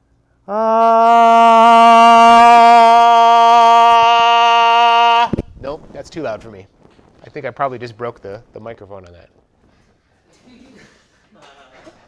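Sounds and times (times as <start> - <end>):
man singing loud steady ooh: 0.4 - 5.4.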